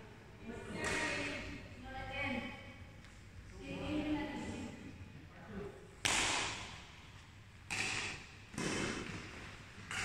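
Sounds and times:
racket hitting shuttlecock: 0.8 - 1.4, 6.0 - 10.0.

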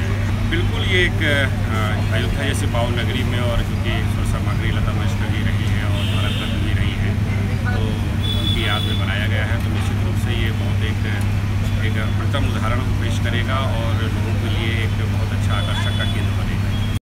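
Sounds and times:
man talking into a microphone: 0.0 - 16.8.

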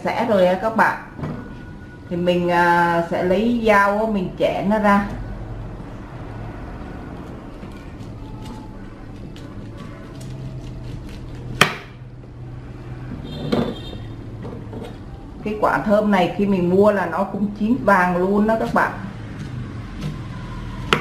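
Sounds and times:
knife cutting pineapple: 7.2 - 12.0.

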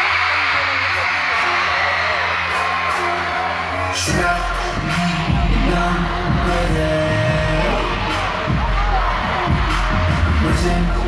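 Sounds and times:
dance track with singing: 0.0 - 11.0
heavy bass: 2.3 - 11.0.

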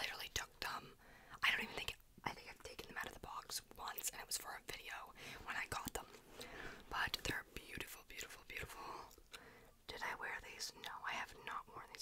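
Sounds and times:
whispered speech: 9.9 - 12.0.

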